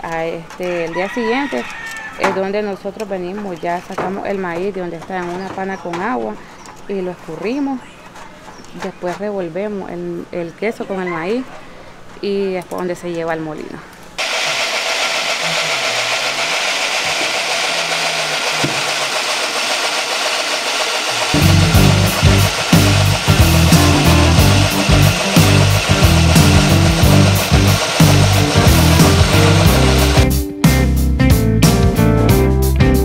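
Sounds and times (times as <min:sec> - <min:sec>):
corn mill grinding: 0:14.2 - 0:30.3
music with strong beat: 0:21.4 - 0:33.0.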